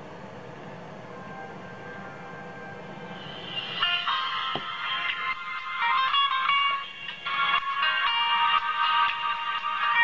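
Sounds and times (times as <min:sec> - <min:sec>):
music from small phone speaker: 0:01.2 - 0:10.0.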